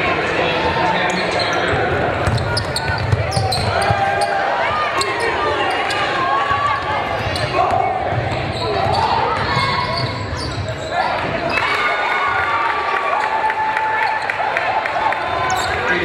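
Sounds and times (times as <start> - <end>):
players and spectators shouting: 0.0 - 16.0
basketball bouncing on court: 1.7 - 4.3, 7.3 - 10.8.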